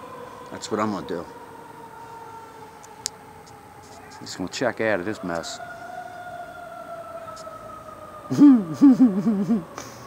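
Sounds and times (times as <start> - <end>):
distant siren: 0.0 - 10.0
man laughing: 8.3 - 10.0.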